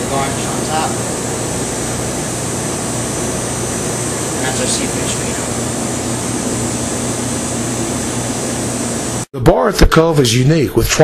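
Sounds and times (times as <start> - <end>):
ventilation fan rushing: 0.0 - 11.0.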